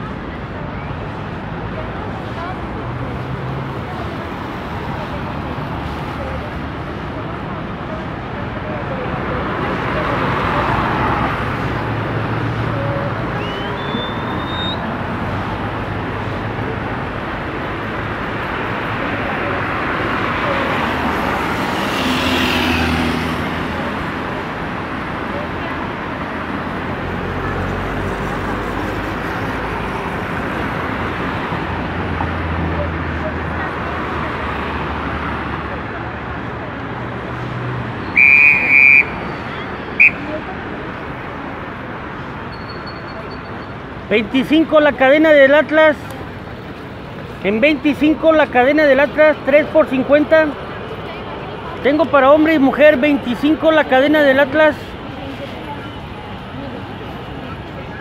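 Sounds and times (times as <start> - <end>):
road traffic passing: 0.0 - 58.0
short rising whistle: 13.4 - 14.9, 38.0 - 40.3
babble of many voices: 50.5 - 53.4, 54.7 - 58.0.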